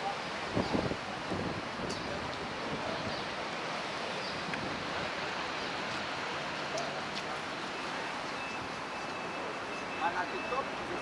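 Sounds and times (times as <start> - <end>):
wind on microphone: 0.4 - 3.3.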